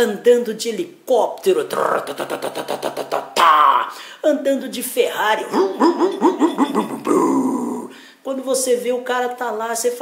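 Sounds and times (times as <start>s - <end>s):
man imitating a helicopter: 1.8s - 3.8s, 5.4s - 7.8s.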